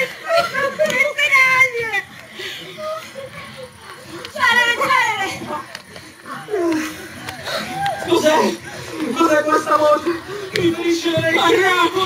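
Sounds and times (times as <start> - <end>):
voices crying out and moaning: 0.0 - 12.0.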